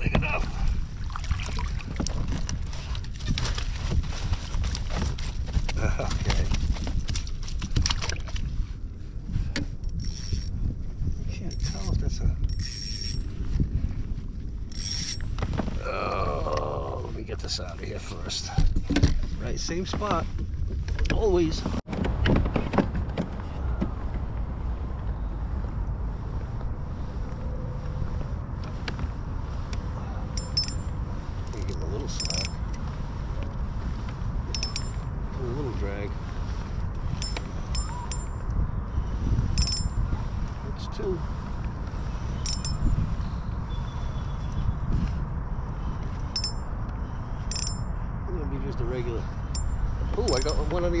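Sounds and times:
wind rumble on microphone: 0.0s - 51.0s
spinning reel cranking: 9.9s - 10.5s, 12.5s - 13.2s, 14.7s - 15.2s.

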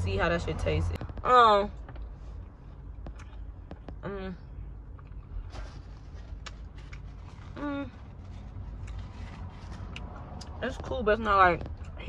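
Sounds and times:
low steady rumble: 0.0s - 12.0s
person chewing: 2.9s - 3.9s, 4.9s - 10.6s.

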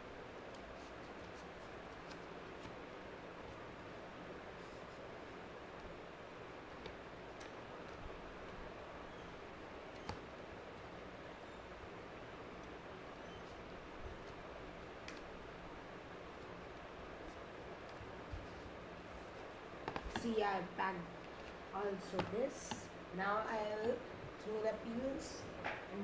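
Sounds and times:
steady low hiss: 0.0s - 26.0s.

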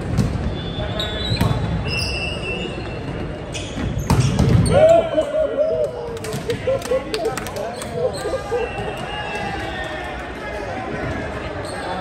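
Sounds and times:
shoes squeaking on gym floor: 0.5s - 4.7s
ball bouncing: 4.0s - 4.7s.

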